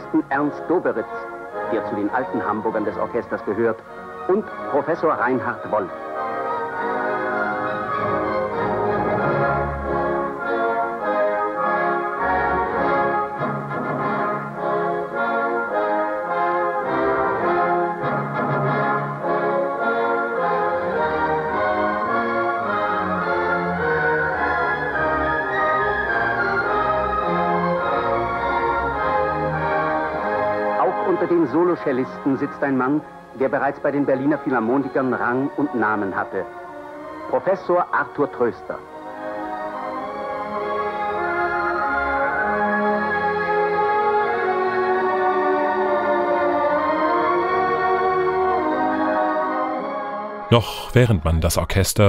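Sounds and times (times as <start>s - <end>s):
symphony orchestra playing: 0.0s - 50.6s.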